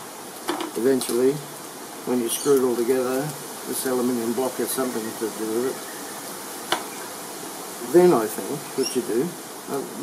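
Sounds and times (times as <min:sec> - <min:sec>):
wind hiss on microphone: 0:00.0 - 0:10.0.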